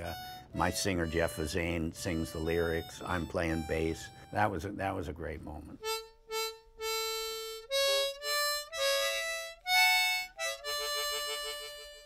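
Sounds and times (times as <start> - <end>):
harmonica playing slow melody: 0.0 - 5.1, 5.7 - 12.0.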